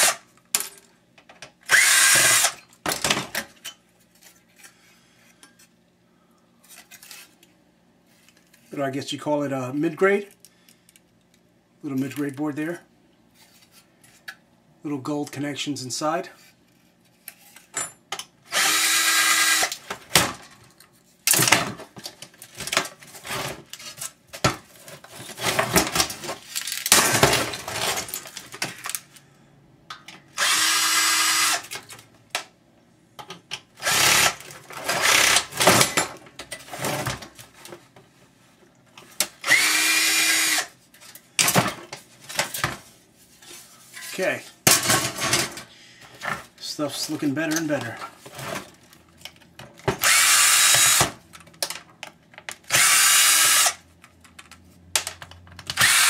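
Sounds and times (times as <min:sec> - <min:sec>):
power drill driving out screws: 0:01.7 - 0:02.6, 0:18.5 - 0:19.8, 0:30.4 - 0:31.8, 0:33.8 - 0:35.7, 0:39.4 - 0:40.7, 0:50.0 - 0:51.2, 0:52.7 - 0:53.8, 0:55.8 - 0:56.0
clicks and knocks of parts: 0:10.3 - 0:12.4, 0:19.7 - 0:29.3, 0:47.4 - 0:52.7, 0:54.0 - 0:56.0.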